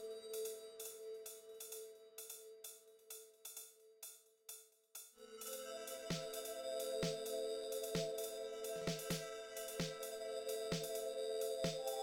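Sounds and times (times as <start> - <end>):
drum machine hi-hat ticks: 0.0 - 12.0.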